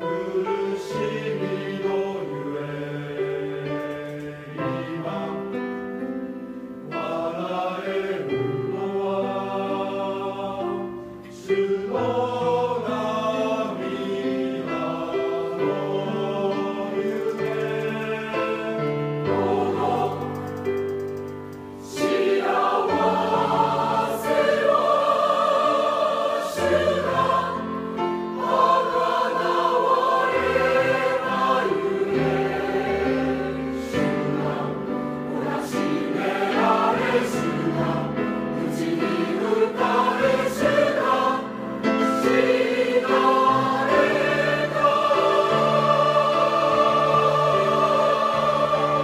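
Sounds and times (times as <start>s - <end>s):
choir singing a hymn: 0.0s - 21.1s, 21.7s - 49.0s.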